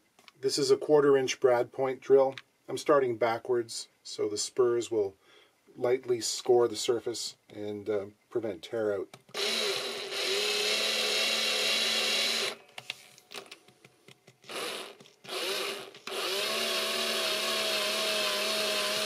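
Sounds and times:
electric drill boring into wood: 9.3 - 12.6, 14.5 - 19.0.

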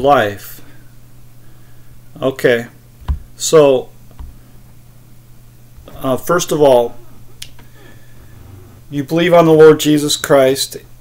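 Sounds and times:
steady low hum: 0.0 - 11.0
man talking: 5.8 - 7.0, 8.9 - 10.9.

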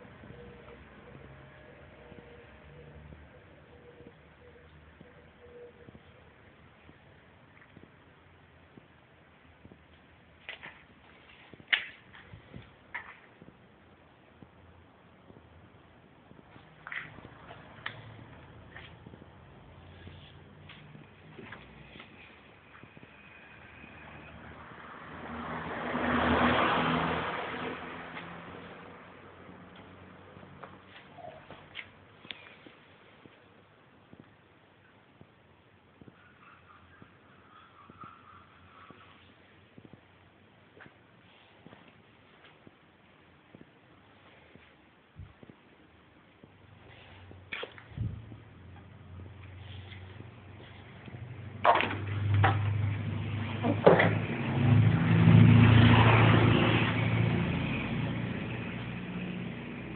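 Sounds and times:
car engine revving: 51.3 - 59.9.

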